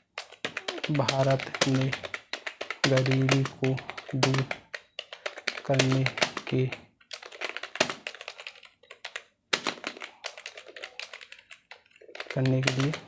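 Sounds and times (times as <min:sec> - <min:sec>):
computer keyboard typing: 0:00.0 - 0:13.0.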